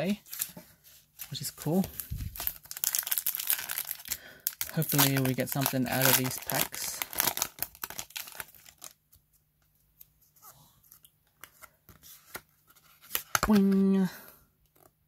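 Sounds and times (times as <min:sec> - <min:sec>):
foil wrapper crinkling and tearing: 0:01.2 - 0:09.0.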